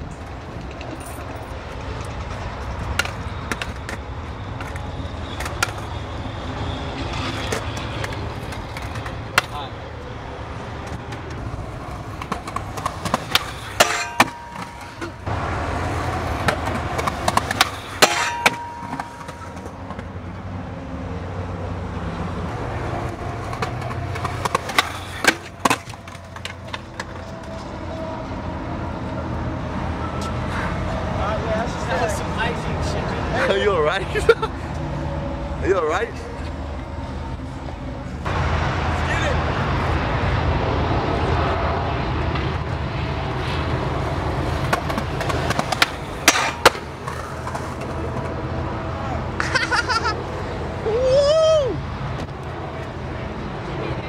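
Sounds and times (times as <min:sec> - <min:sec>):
skateboard wheels rolling: 0:00.0 - 0:31.0, 0:39.2 - 0:54.0
skateboard clacks and knocks: 0:00.4 - 0:04.0, 0:10.8 - 0:15.3, 0:15.9 - 0:20.1, 0:23.0 - 0:27.6, 0:44.4 - 0:48.4.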